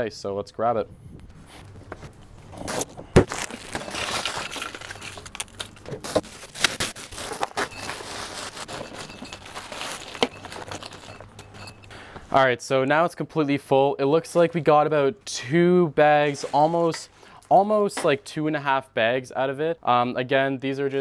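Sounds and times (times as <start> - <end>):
plastic bag crinkling: 2.7 - 11.9
ice cubes rattling and crunching: 3.2 - 11.9.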